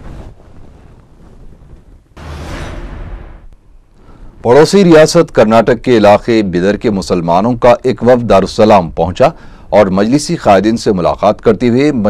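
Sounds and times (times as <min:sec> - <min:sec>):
wind buffeting microphone: 0:00.0 - 0:02.2.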